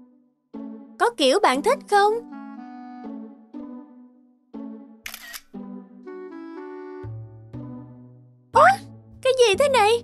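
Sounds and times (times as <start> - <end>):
background music melody: 0.0 - 10.0
phone camera shutter click: 5.1 - 5.6.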